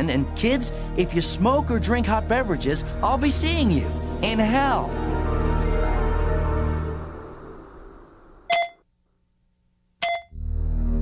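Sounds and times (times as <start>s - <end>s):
short electronic beeps: 8.5s - 8.8s, 10.0s - 10.4s.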